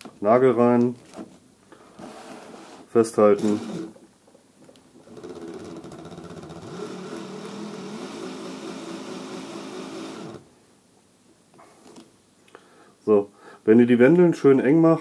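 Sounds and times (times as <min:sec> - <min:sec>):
cordless drill motor whine: 0:05.0 - 0:10.5.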